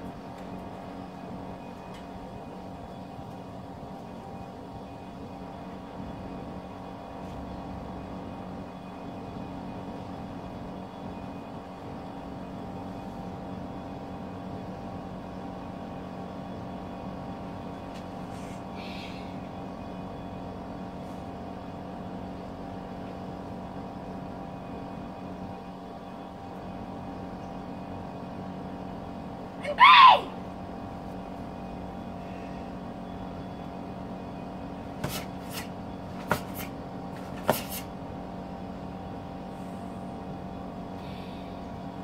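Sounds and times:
steady machine hum: 0.0s - 42.0s.

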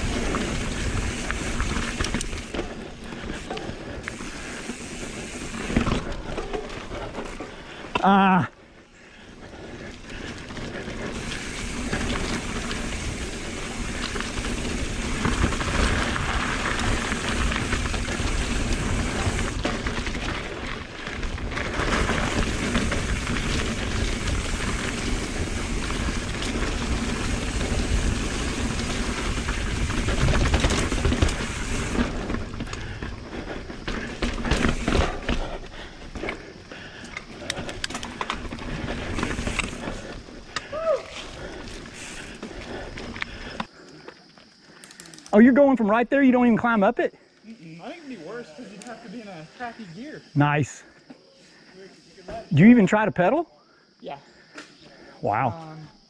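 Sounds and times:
bike tyres on dirt and rock: 0.0s - 53.2s
bike clattering over rocks: 11.1s - 32.9s, 33.8s - 35.6s.

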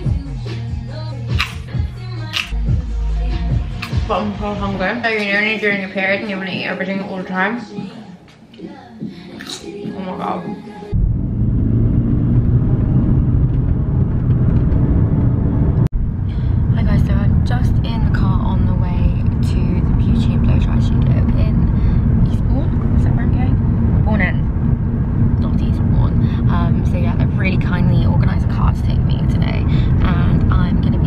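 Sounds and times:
car engine and tyres rumbling: 10.9s - 31.0s.

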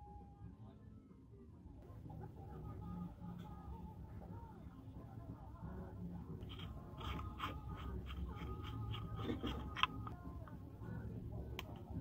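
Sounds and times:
marker squeaking and scratching: 6.4s - 10.0s.

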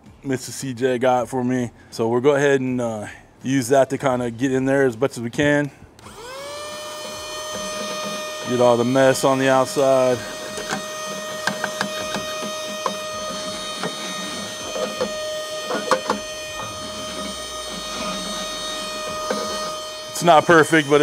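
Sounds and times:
handheld vacuum cleaner whining: 6.0s - 21.0s.

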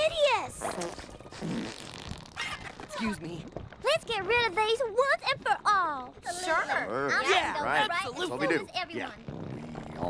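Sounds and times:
cartoon fart-like pops: 0.6s - 2.9s, 9.2s - 10.0s
cartoon squeal: 2.3s - 2.8s.

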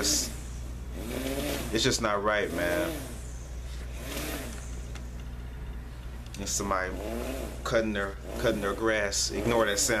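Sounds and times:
lawn mower engine droning: 0.0s - 10.0s.

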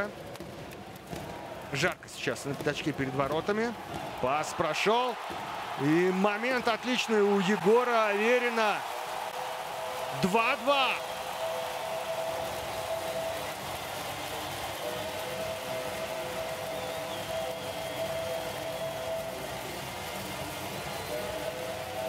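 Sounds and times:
arena crowd hubbub: 0.0s - 22.0s.

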